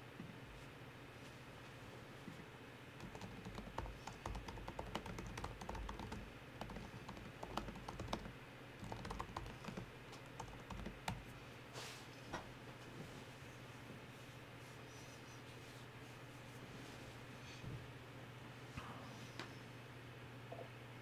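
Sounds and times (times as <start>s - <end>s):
low steady hum: 0.0s - 21.0s
typing on computer keyboard: 3.0s - 11.2s.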